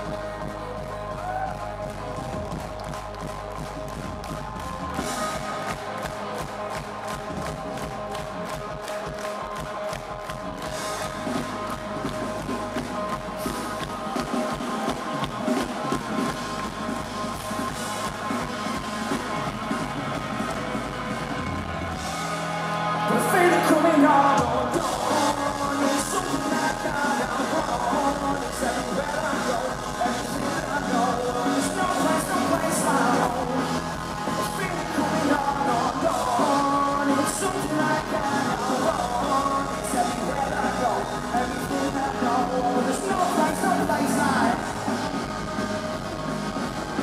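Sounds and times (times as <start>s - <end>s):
live rock band playing: 0.0s - 47.0s.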